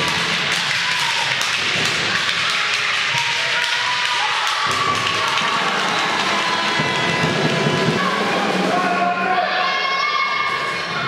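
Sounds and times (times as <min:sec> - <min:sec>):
spectators' voices: 0:00.0 - 0:11.0.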